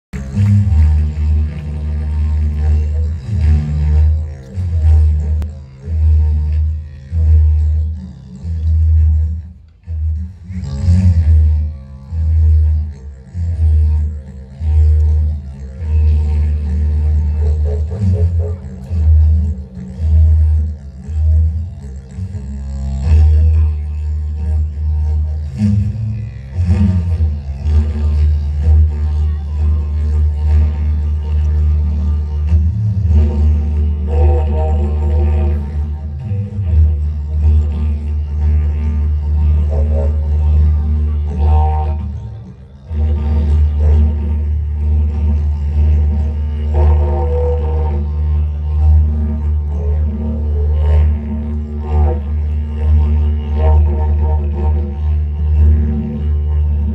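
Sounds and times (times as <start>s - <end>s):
didgeridoo drone: 0.0s - 56.9s
didgeridoo overtone calls: 0.2s - 56.9s.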